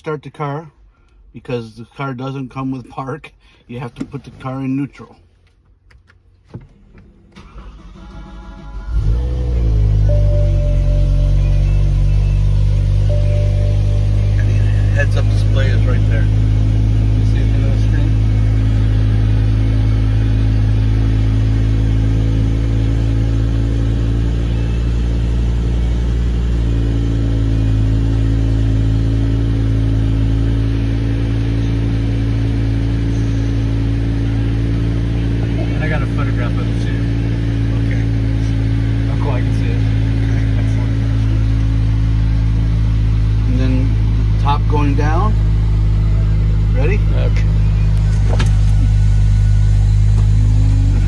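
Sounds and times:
car engine revving and idling: 0:00.0 - 0:51.0
car starter cranking: 0:05.6 - 0:10.9.

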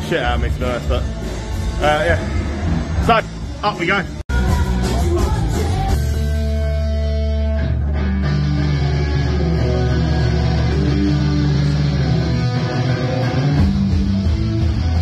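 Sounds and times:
live rock band playing: 0:04.3 - 0:15.0.

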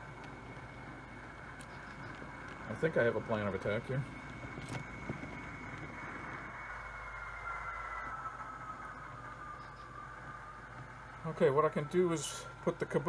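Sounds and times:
model train motor whine: 0:00.0 - 0:13.0
rolling wheels hum: 0:00.0 - 0:13.0.

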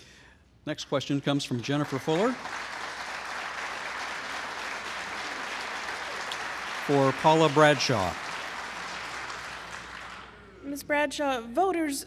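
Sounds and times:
audience applause: 0:01.5 - 0:10.4.

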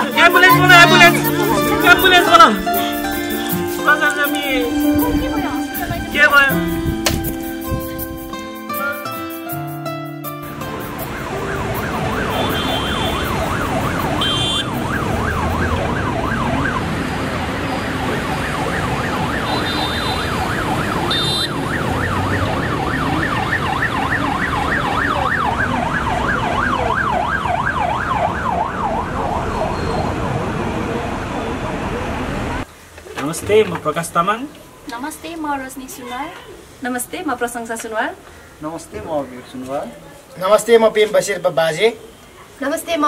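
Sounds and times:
busy city traffic: 0:00.0 - 0:43.0
siren yelping: 0:10.8 - 0:30.6.

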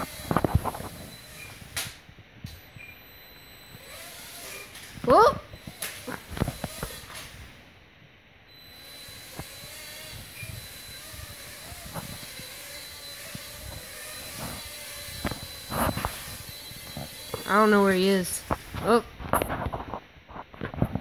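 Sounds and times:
toy drone motors whining: 0:00.0 - 0:07.6, 0:08.5 - 0:19.0.

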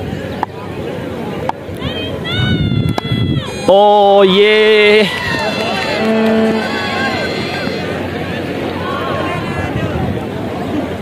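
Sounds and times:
distant chatter: 0:00.0 - 0:11.0
players shouting and calling: 0:01.8 - 0:09.8.

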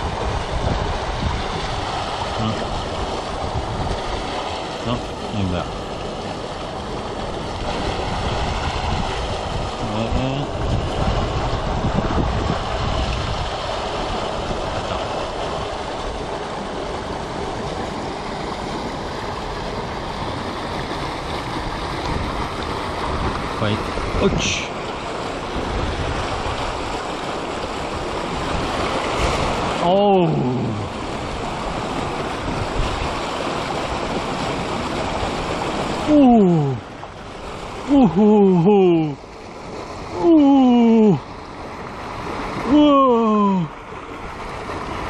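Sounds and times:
water pouring from pipe into river: 0:00.0 - 0:45.0.

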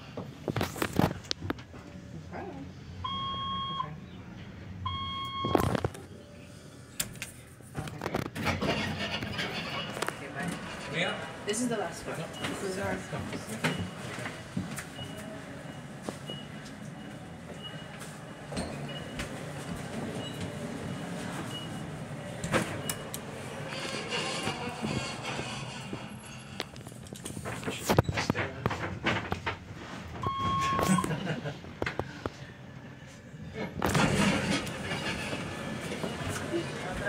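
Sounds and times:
elevator running noise: 0:08.1 - 0:37.0.

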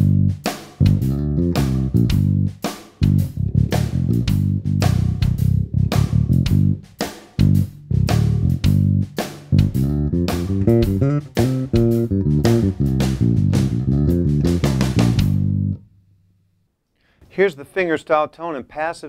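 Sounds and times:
electric bass played fingerstyle: 0:00.0 - 0:16.0.

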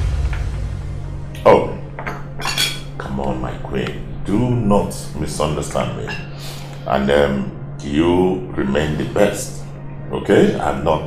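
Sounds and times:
cutlery clinking on plates: 0:02.0 - 0:02.9.

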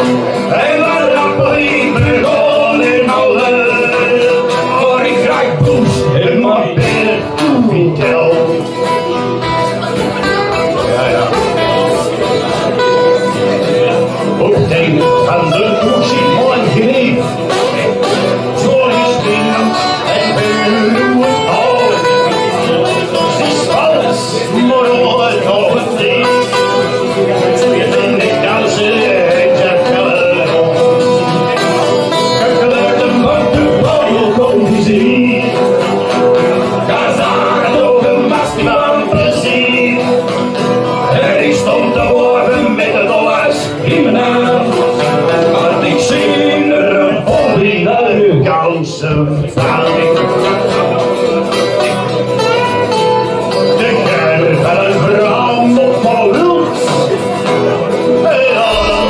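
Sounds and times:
acoustic guitars strummed: 0:00.0 - 0:59.0
man singing into microphone: 0:00.0 - 0:59.0.

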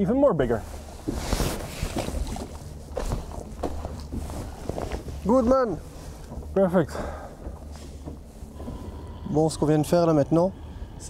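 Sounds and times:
knocks and rustles of handling: 0:00.7 - 0:08.8.

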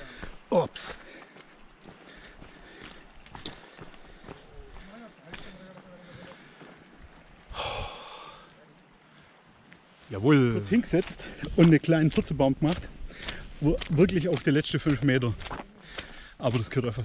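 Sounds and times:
person breathing: 0:00.0 - 0:00.4, 0:01.0 - 0:09.5, 0:13.0 - 0:13.6, 0:15.8 - 0:16.4
footsteps on muddy trail: 0:00.0 - 0:08.6, 0:09.3 - 0:17.0.

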